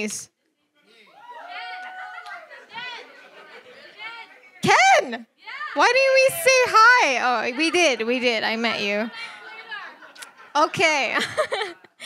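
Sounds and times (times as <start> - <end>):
indistinct chatter of voices: 0.5 - 10.6
amplified speech: 0.8 - 11.2.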